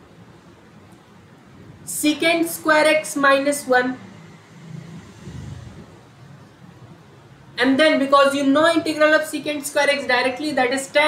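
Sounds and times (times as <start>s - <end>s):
faint low rumble: 3.6s - 7.6s.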